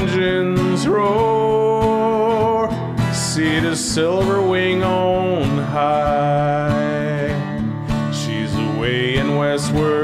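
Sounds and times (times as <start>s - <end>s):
acoustic guitar strumming: 0.0s - 10.0s
person singing: 0.0s - 10.0s.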